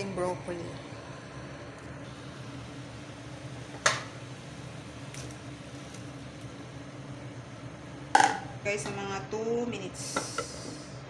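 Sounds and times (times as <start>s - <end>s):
low hum: 0.8s - 11.0s
water boiling in a pan: 1.1s - 11.0s.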